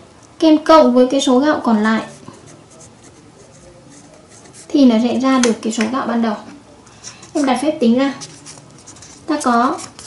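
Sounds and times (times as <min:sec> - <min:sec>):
marker pen writing on paper: 0:02.0 - 0:04.8, 0:08.2 - 0:10.0.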